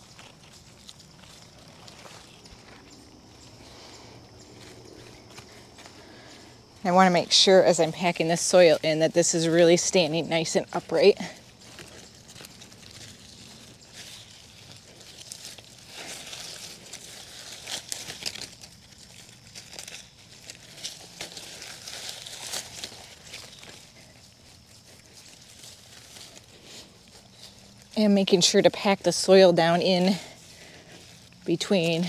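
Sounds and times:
hands packing dry soil: 0:00.0 - 0:32.0
leaves brushing against hands: 0:00.0 - 0:32.0.

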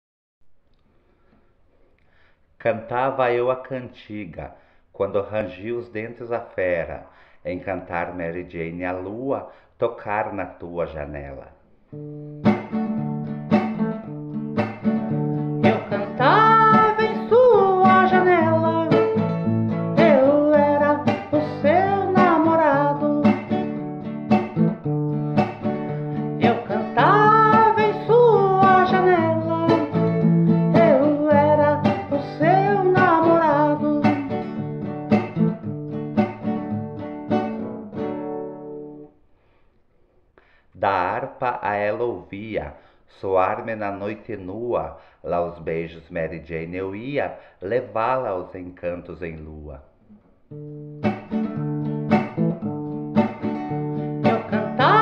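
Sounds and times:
plucked guitar chords: 0:11.9 - 0:39.1, 0:50.5 - 0:55.0
wordless vocal melody: 0:15.4 - 0:24.0, 0:25.4 - 0:34.8, 0:54.0 - 0:55.0.

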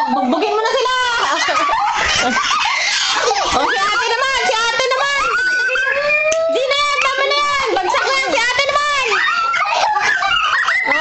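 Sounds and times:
children squealing and shrieking: 0:00.0 - 0:11.0.

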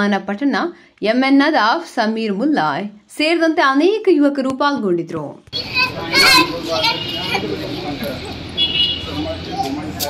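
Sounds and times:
crowd talking: 0:05.6 - 0:10.0.

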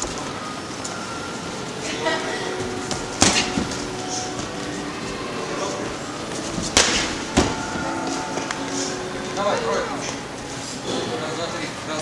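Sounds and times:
boxing gloves smacking mitts: 0:06.6 - 0:07.6.

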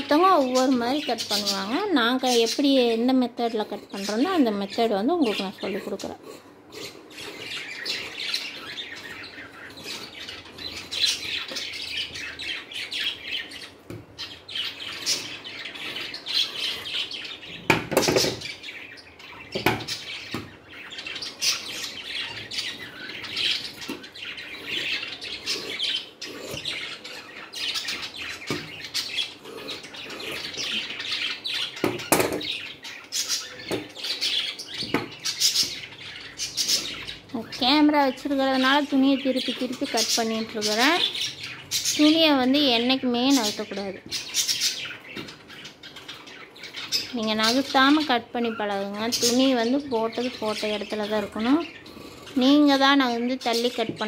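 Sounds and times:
birds chirping: 0:00.0 - 0:54.0.

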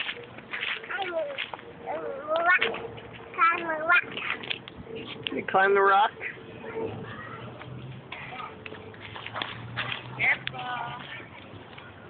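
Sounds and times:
toddler making high-pitched calls: 0:01.0 - 0:02.7.

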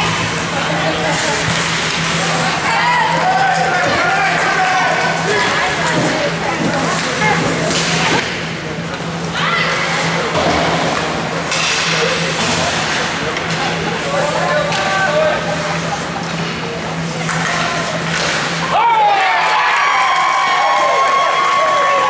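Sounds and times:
spectators chattering: 0:00.0 - 0:19.0
steady low hum: 0:00.0 - 0:19.0.

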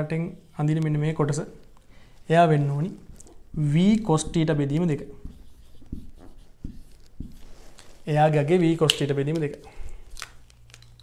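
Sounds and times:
marker scratching on whiteboard: 0:04.2 - 0:08.2.

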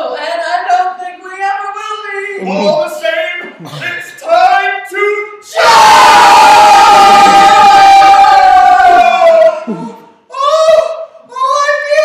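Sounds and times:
group shouting together: 0:05.5 - 0:11.0.

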